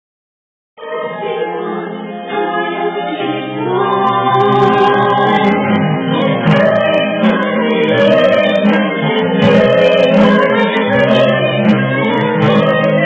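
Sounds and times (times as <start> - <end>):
vocal group singing: 0.8 - 13.0
band accompaniment: 3.9 - 13.0.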